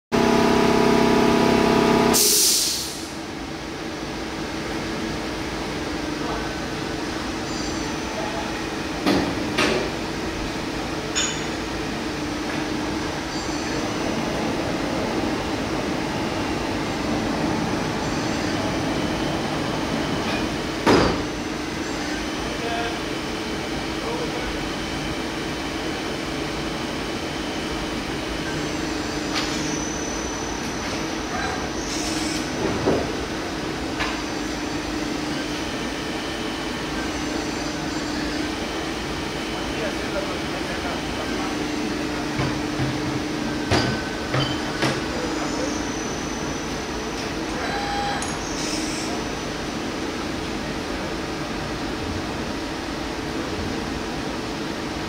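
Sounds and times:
loud steady tone: 0:00.1 - 0:03.4, 0:07.4 - 0:49.6.

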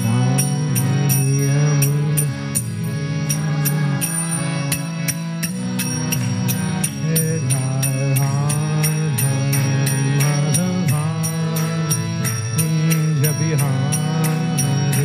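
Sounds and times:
man singing a chant: 0:00.0 - 0:02.6, 0:06.9 - 0:15.0
hand cymbals striking a beat: 0:00.0 - 0:15.0
harmonium chords: 0:00.0 - 0:15.0.

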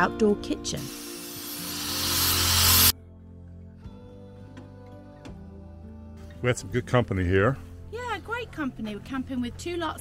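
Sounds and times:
angle grinder grinding steel: 0:00.8 - 0:02.9.

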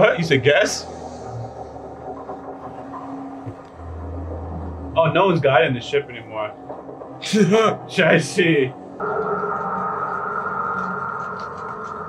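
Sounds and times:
deep rumble: 0:00.0 - 0:12.0.

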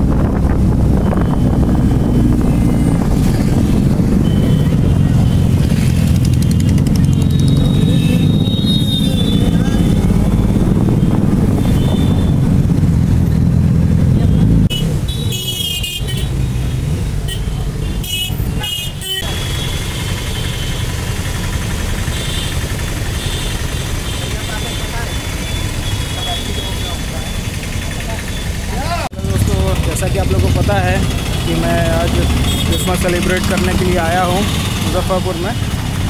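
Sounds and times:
wind noise: 0:00.0 - 0:08.5, 0:09.1 - 0:14.0
motorcycle engine: 0:00.0 - 0:17.6, 0:18.6 - 0:36.0
engines idling: 0:01.0 - 0:12.4, 0:19.2 - 0:36.0
vehicle horn: 0:11.6 - 0:12.4, 0:14.2 - 0:16.3, 0:17.3 - 0:20.8, 0:32.4 - 0:33.0
voices: 0:24.1 - 0:35.7.

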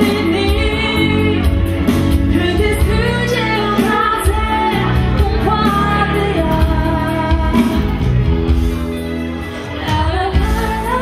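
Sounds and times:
lead vocal singing: 0:00.0 - 0:08.1
live band playing dance music: 0:00.0 - 0:11.0.

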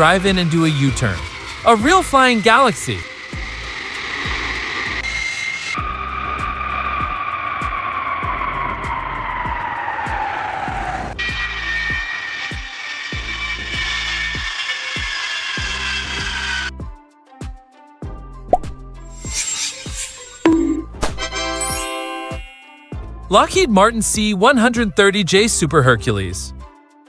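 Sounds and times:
jet engine whine: 0:00.0 - 0:11.1
music with steady beat: 0:16.8 - 0:19.2.

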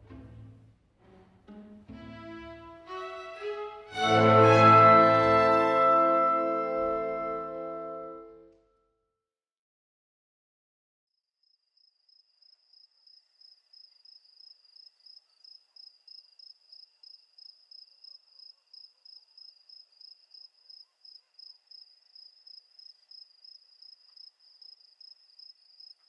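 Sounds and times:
cricket chirping: 0:11.4 - 0:26.0.

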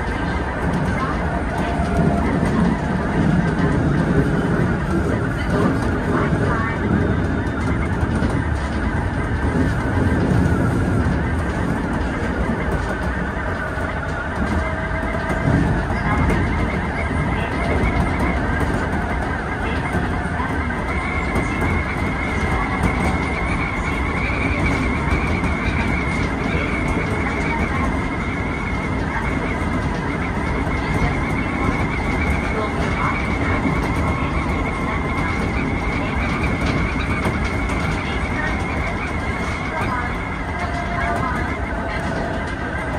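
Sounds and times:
train wheels rumbling on rails: 0:00.0 - 0:42.9.

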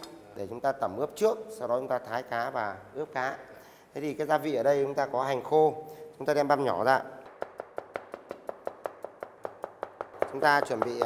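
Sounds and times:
knife chopping on cutting board: 0:07.3 - 0:11.0.

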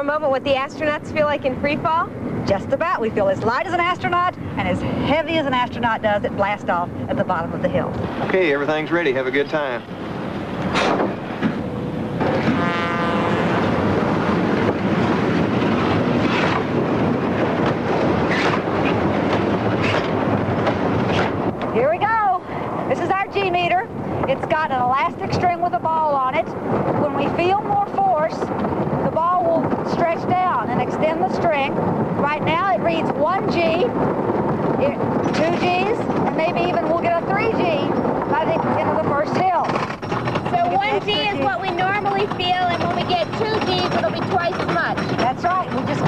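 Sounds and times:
roller coaster rattling on track: 0:00.0 - 0:46.0
rapid clicking: 0:39.2 - 0:46.0
riders' voices: 0:40.4 - 0:46.0.

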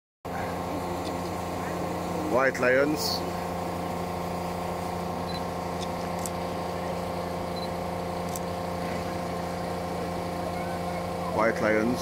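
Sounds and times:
faint voices murmuring: 0:00.3 - 0:02.5, 0:08.8 - 0:12.0
steady mechanical hum: 0:00.3 - 0:12.0.

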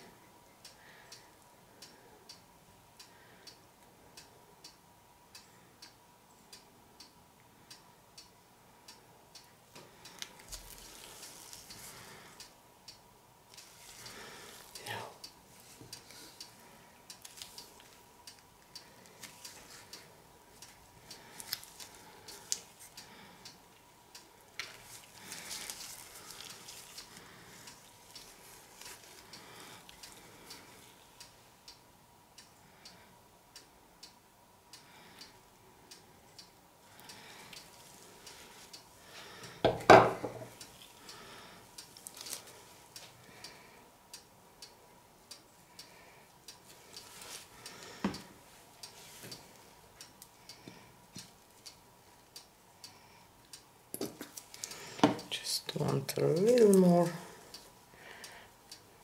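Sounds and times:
canvas rustling on plastic sheet: 0:10.4 - 0:11.9, 0:24.7 - 0:29.2.

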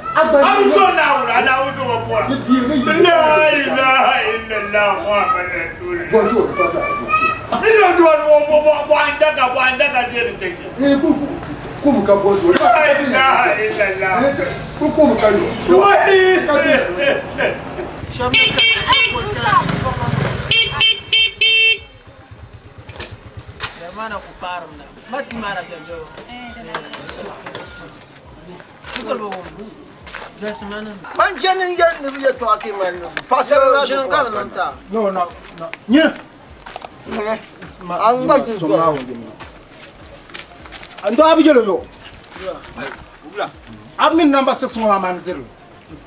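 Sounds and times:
vehicle horn honking: 0:18.2 - 0:19.6, 0:20.4 - 0:22.0.

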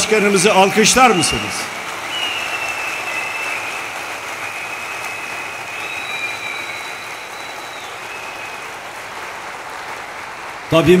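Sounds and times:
large audience applauding: 0:00.0 - 0:11.0.

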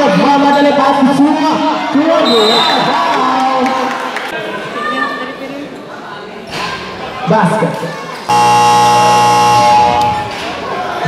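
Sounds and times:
basketball game buzzer: 0:08.3 - 0:10.4.

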